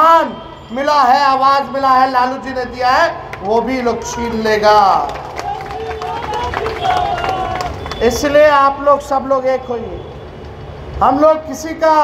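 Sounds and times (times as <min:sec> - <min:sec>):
man speaking over loudspeakers: 0:00.0 - 0:10.1, 0:11.0 - 0:12.0
crowd noise: 0:03.0 - 0:09.3.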